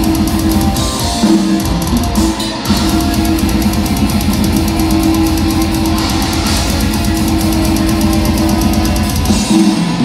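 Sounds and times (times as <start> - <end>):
distorted electric guitars: 0.0 - 10.0
fast drumming on drum kit: 0.0 - 10.0.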